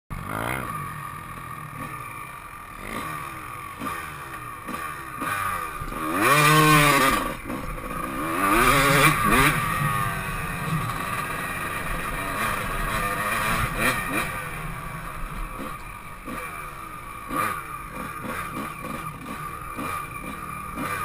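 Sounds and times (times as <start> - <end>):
dirt bike engine revving: 0.1 - 21.0.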